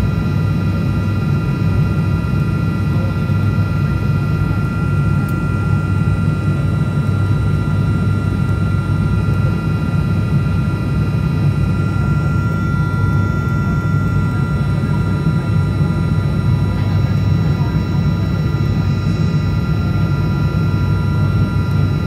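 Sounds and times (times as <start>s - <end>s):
aircraft engines droning: 0.0s - 22.0s.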